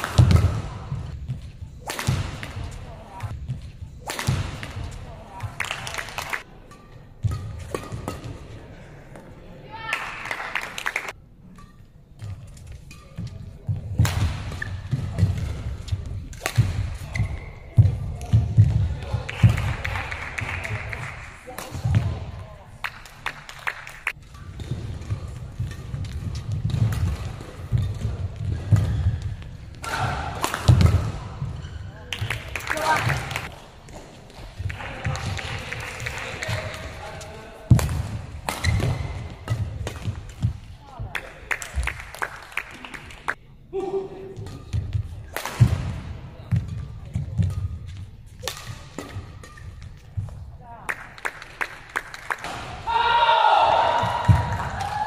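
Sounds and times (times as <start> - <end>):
racket striking shuttlecock: 0.0 - 2.8, 3.5 - 5.0, 6.6 - 8.4, 11.5 - 20.0, 24.2 - 31.2, 37.7 - 40.7, 43.8 - 50.4.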